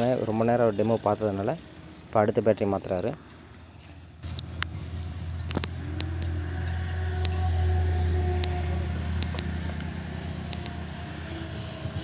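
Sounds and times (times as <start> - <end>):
low engine hum: 3.9 - 12.0.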